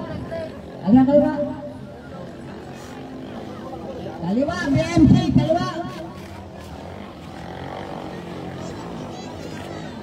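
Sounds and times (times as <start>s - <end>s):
racing boat engines droning: 0.0s - 10.0s.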